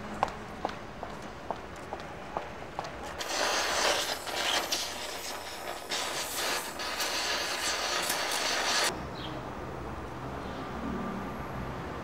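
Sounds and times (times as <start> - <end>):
steady hissing: 2.8 - 8.9
short scratchy strokes: 3.2 - 8.9.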